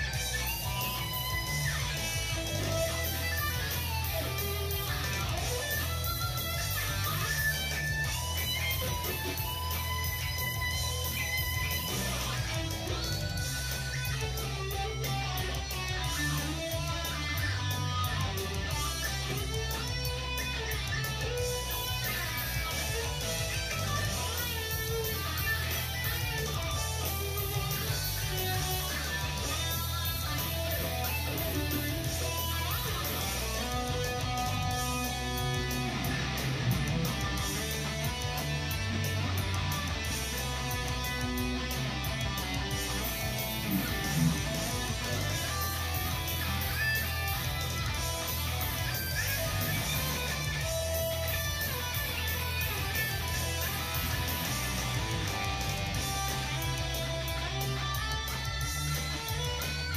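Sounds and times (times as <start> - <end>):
electric guitar playing: 0.0 - 59.9.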